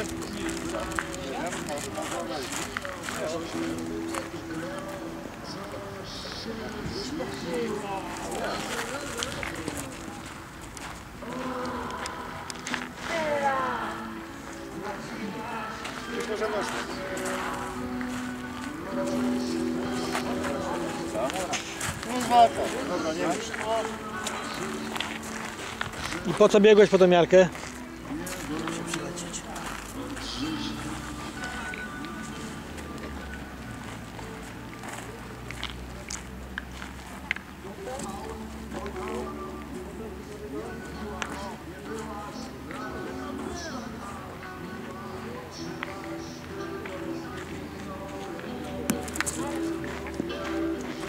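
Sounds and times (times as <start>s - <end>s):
footsteps crunching on gravel: 0.0s - 44.2s, 45.6s - 51.0s
indistinct voices: 0.0s - 51.0s.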